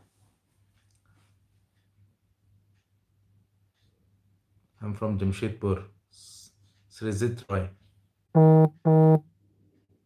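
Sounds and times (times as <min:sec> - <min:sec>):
short low electronic beeps: 0:08.4 - 0:09.2.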